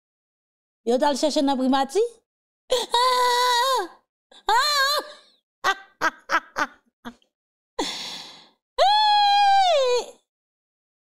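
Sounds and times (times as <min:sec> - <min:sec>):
woman laughing: 0:05.6 - 0:07.2.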